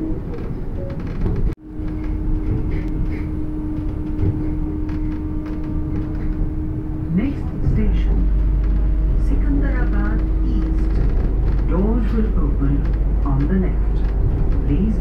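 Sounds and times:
train running rumble: 0.0 - 15.0
steady hum: 1.6 - 15.0.

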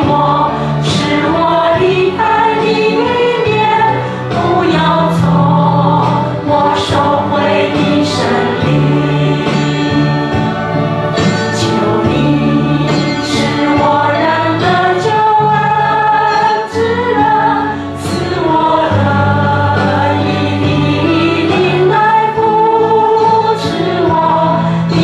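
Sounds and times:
worship band with group singing: 0.0 - 25.0.

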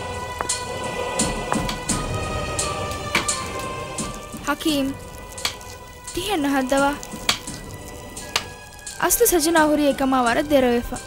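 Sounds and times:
rain-like hiss: 0.0 - 10.8.

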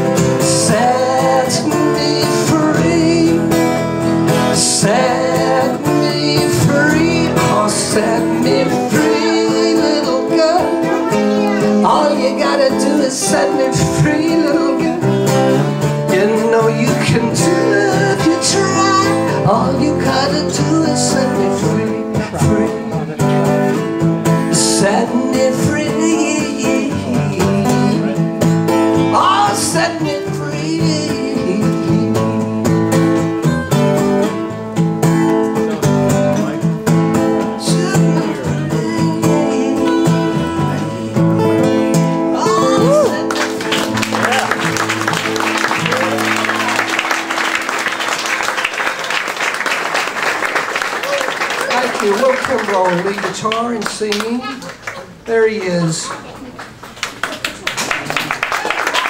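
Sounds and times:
acoustic guitars strumming: 0.0 - 56.1
applause: 43.1 - 59.0.

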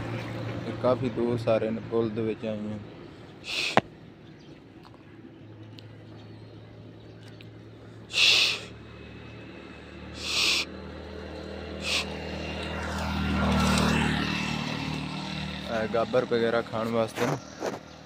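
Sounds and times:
vehicle engine hum: 0.0 - 18.0
short hissing bursts: 3.5 - 3.8, 8.1 - 8.7, 10.2 - 10.7, 11.8 - 12.1.

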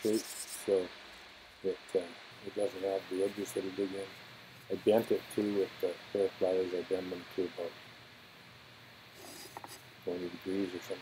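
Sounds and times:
pen tip scratching wood: 9.2 - 9.8.

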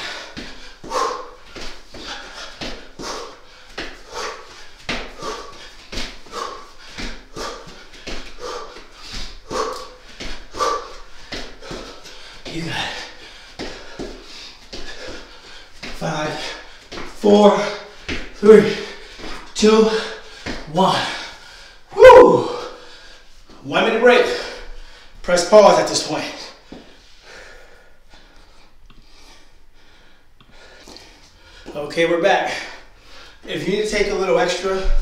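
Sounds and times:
man breathing hard and grunting: 0.0 - 23.3.

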